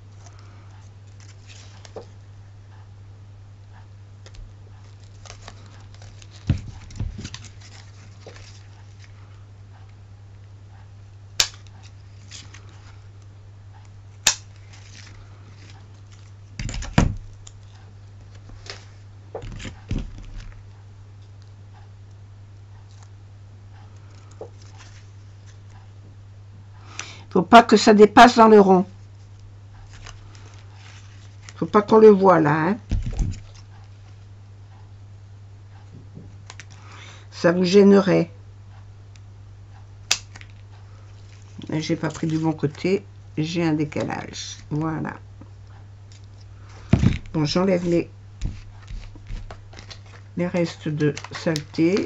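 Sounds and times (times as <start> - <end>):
card handling noises: 0.0 - 2.2, 4.2 - 9.9, 11.4 - 21.6, 23.8 - 25.8, 29.0 - 32.1, 32.8 - 34.3, 40.1 - 45.0, 46.1 - 52.0
electrical hum: 0.0 - 52.0
scissors snipping card: 11.4 - 12.7.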